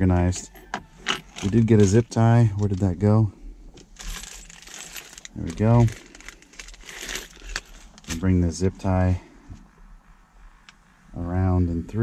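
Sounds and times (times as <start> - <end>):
plastic bag crinkling: 3.9 - 8.2.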